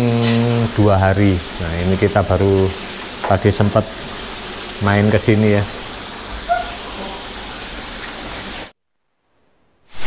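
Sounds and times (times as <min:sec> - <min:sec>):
waterfall splashing into pond: 0:00.0 - 0:08.7.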